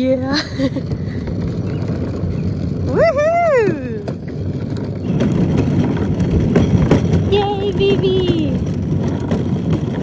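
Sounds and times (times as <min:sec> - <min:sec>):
plastic wheels rolling on concrete: 0:00.0 - 0:10.0.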